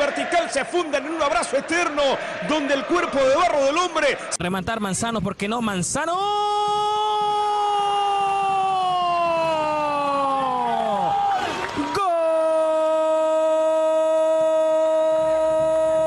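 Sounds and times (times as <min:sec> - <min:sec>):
commentator shouting goal: 0:00.0 - 0:11.1.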